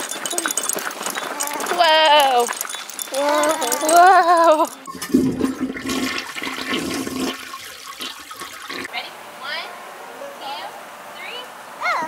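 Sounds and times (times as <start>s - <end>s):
toilet flushing: 4.8s - 8.9s.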